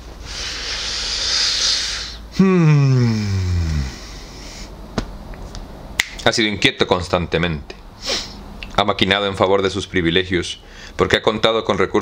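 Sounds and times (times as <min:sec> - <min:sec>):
hissing breath blown out: 0:00.2 - 0:04.8, 0:08.0 - 0:08.4.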